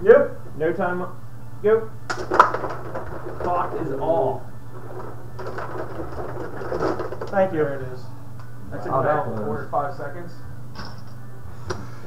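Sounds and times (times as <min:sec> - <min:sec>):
steady low hum: 0:00.0 - 0:12.0
puck clattering on game board: 0:02.1 - 0:04.1, 0:04.8 - 0:07.5
metal rods sliding and spinning: 0:02.2 - 0:07.6.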